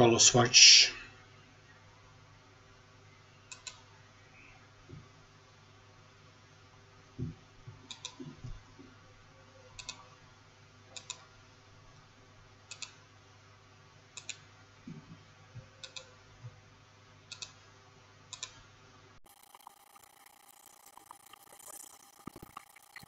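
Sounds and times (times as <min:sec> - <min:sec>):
computer mouse clicking: 0:03.5 - 0:03.8, 0:07.9 - 0:08.3, 0:09.8 - 0:10.0, 0:11.0 - 0:11.2, 0:12.7 - 0:13.0, 0:14.2 - 0:14.4, 0:15.8 - 0:16.2, 0:17.3 - 0:17.6, 0:18.3 - 0:18.6.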